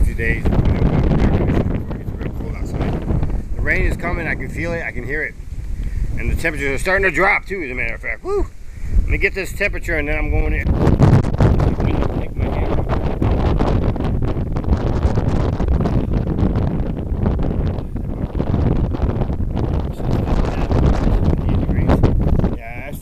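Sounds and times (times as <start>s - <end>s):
gusty wind on microphone: 0.0s - 23.0s.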